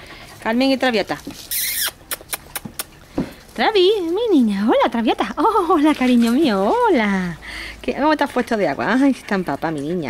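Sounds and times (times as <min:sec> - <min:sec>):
puppy squealing: 0:01.4 - 0:02.9.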